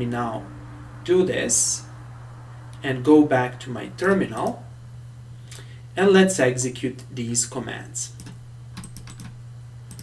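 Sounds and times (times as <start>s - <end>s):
low hum: 0.0s - 10.0s
computer keyboard keystrokes: 8.2s - 10.0s.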